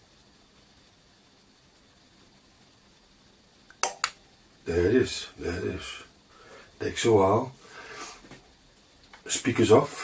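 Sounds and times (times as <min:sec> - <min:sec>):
amplifier relay click: 0:03.7 - 0:04.2.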